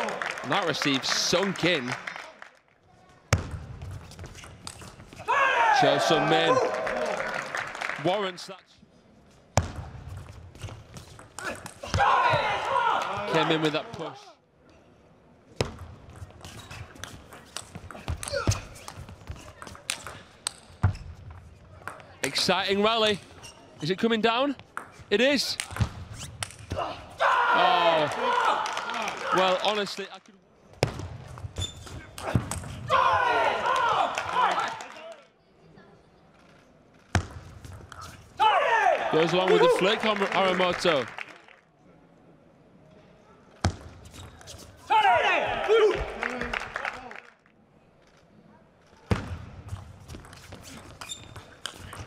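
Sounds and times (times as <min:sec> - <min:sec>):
player shouting: 0:05.3 - 0:07.2, 0:11.9 - 0:14.4, 0:26.8 - 0:29.4, 0:32.9 - 0:34.8, 0:38.4 - 0:40.1, 0:44.9 - 0:46.3.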